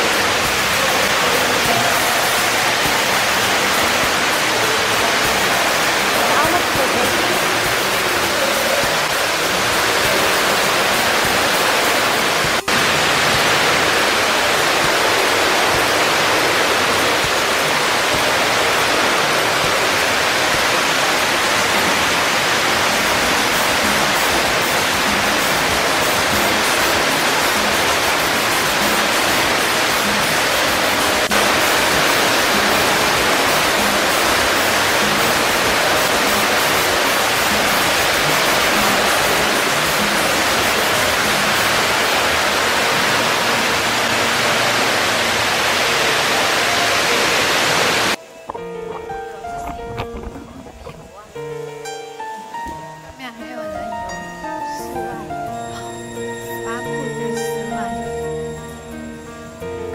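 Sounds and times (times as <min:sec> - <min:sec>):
loud rushing noise: 0:00.0 - 0:51.3
faint music: 0:00.0 - 0:59.9.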